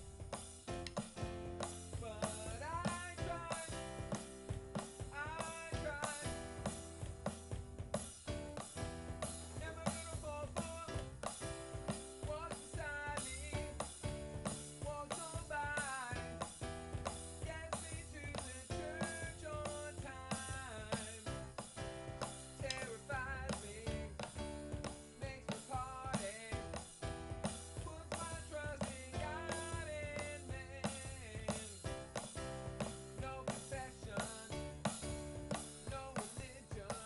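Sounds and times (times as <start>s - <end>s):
bass line: 0.0s - 36.9s
drum kit beat: 0.0s - 37.0s
keyboard chords: 0.0s - 37.0s
man singing: 1.8s - 7.0s, 9.5s - 16.6s, 17.4s - 21.6s, 22.4s - 37.0s.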